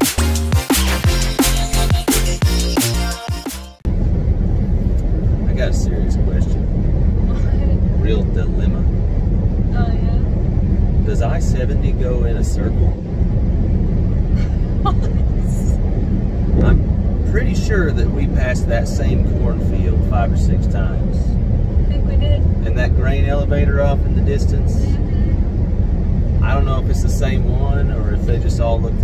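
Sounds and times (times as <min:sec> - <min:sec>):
electronic background music: 0:00.0 - 0:03.8
road and wind noise in car cabin: 0:03.8 - 0:29.0.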